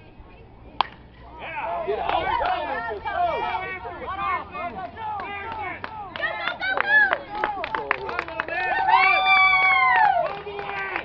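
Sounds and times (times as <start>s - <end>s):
spectators shouting and cheering: 1.3s - 11.0s.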